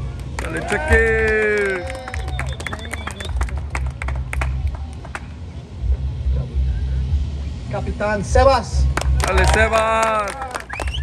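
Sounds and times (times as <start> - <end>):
audience clapping: 0.0 - 5.3, 9.0 - 11.0
low steady rumble: 0.0 - 11.0.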